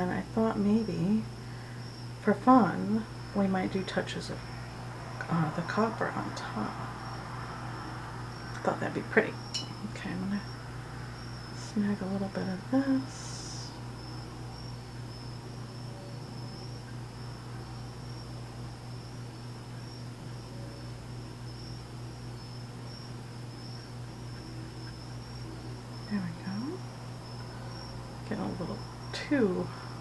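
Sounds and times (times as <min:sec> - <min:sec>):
low electrical hum: 0:00.0 - 0:30.0.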